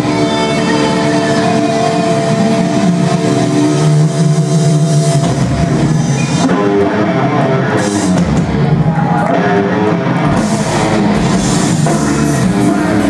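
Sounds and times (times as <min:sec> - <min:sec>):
distorted electric guitars: 0:00.0 - 0:13.0
drum kit: 0:00.0 - 0:13.0.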